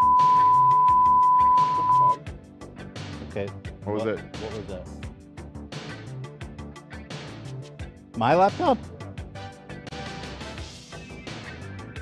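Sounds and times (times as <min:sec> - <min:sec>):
steady test tone: 0:00.0 - 0:02.2.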